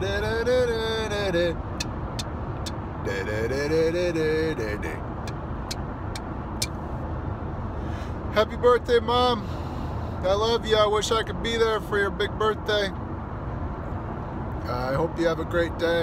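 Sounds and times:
car rumble on road: 0.0s - 16.0s.

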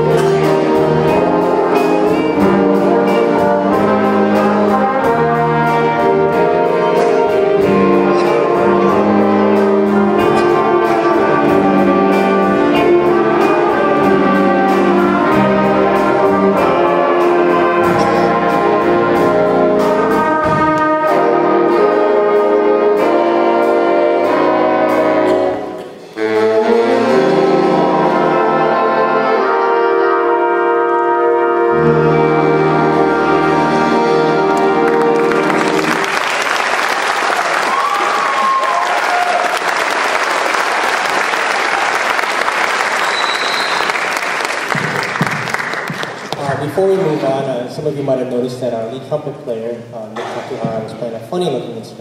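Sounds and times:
big band brass chords: 0.0s - 51.0s
audience applauding: 34.5s - 47.2s
crowd whooping: 35.5s - 41.1s, 42.8s - 44.2s
short high whistle: 43.0s - 44.0s.

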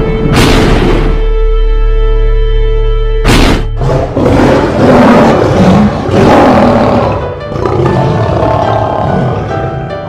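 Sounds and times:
music: 0.0s - 10.0s
lion roaring: 3.4s - 9.6s.

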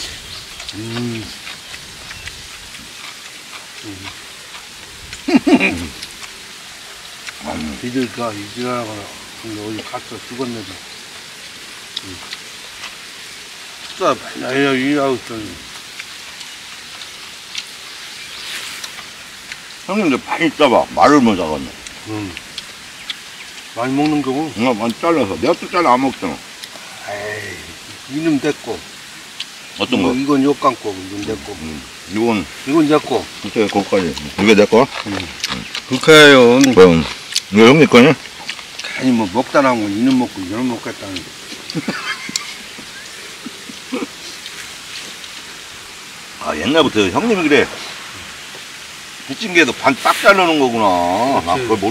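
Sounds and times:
outdoor background hiss: 0.0s - 51.9s
murmured voice: 0.7s - 1.4s, 26.2s - 28.8s.

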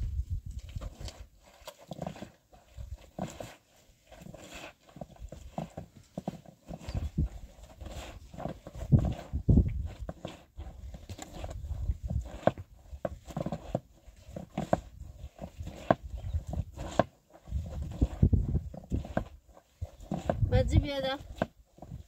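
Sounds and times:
clothes scrubbed in metal basin: 0.8s - 22.0s.

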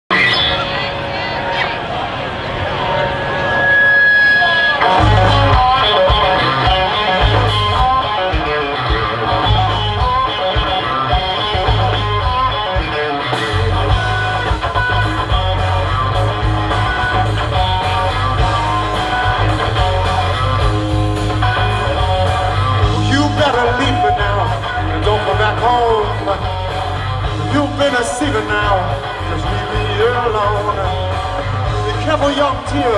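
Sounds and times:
electric guitar: 0.1s - 32.9s
bass guitar: 3.7s - 32.9s
drum kit: 4.8s - 32.9s.

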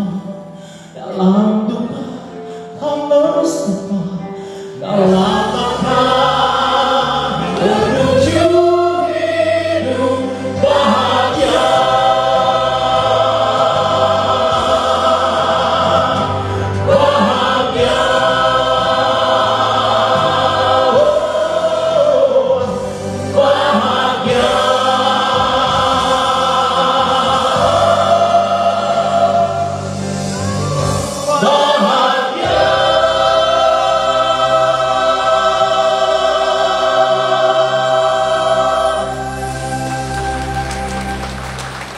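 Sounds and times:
musical accompaniment: 0.0s - 41.9s
man singing gospel through pa: 4.8s - 29.8s, 31.0s - 39.1s.

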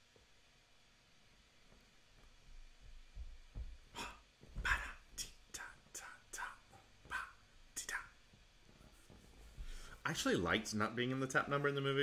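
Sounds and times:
man whispering: 4.0s - 8.2s.

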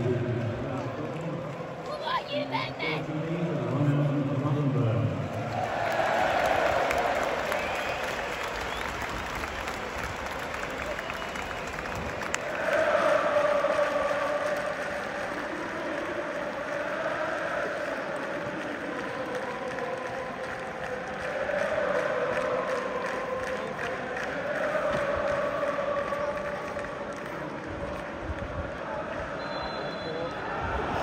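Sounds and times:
crowd clapping: 0.0s - 3.0s, 5.2s - 31.0s
crowd noise: 0.0s - 31.0s
crowd singing a chant: 12.3s - 31.0s.

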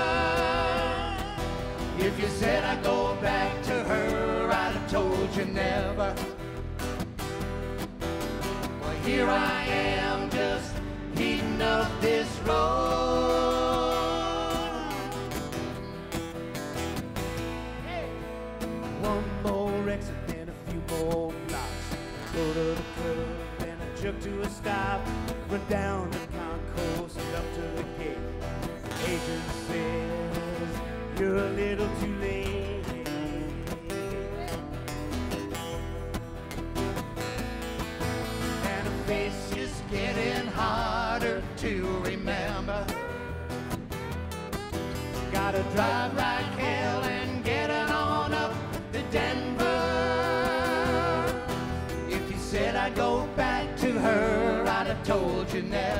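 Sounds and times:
man singing: 0.0s - 6.6s, 8.8s - 15.5s, 18.9s - 35.9s, 38.5s - 43.5s, 45.2s - 55.9s
country band playing live: 0.0s - 55.9s.

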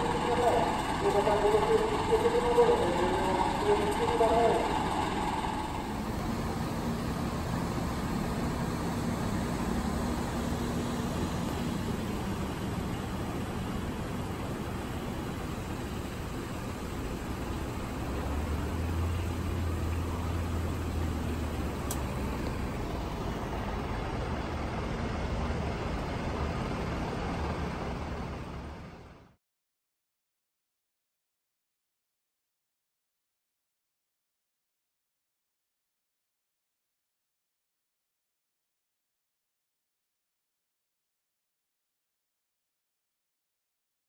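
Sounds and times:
deep engine hum: 0.0s - 29.4s
vehicle engines idling: 0.0s - 29.4s.

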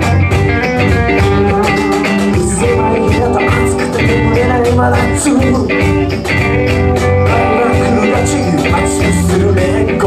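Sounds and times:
drum kit: 0.0s - 10.0s
electric guitars: 0.0s - 10.0s
live rock band playing: 0.0s - 10.0s.

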